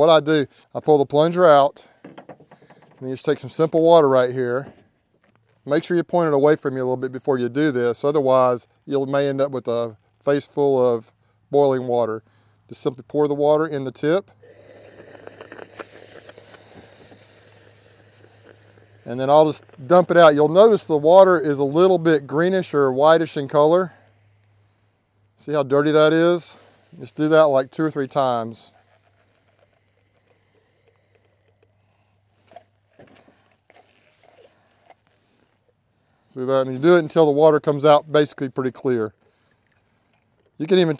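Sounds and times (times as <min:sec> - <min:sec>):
faint steam hiss: 0:14.2 - 0:40.9
crackles: 0:14.7 - 0:20.3, 0:28.3 - 0:36.2.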